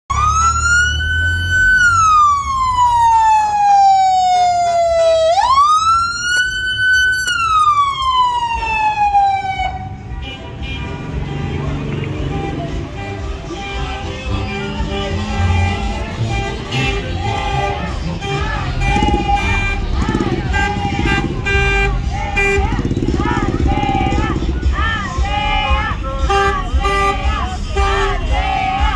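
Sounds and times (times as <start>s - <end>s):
police siren wailing: 0.1s - 10.0s, 17.6s - 21.6s.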